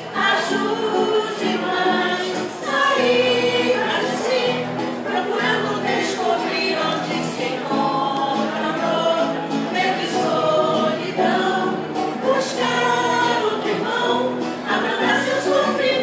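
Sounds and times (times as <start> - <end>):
vocal group singing in harmony: 0.0 - 16.0.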